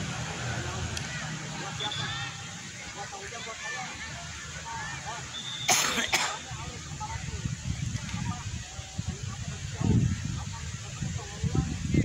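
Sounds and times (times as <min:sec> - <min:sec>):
faint distant voices: 0:00.0 - 0:12.0
person coughing: 0:05.7 - 0:06.4.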